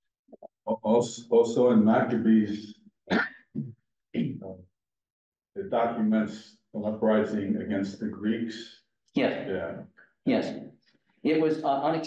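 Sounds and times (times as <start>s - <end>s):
person clearing throat: 3.1s - 4.5s.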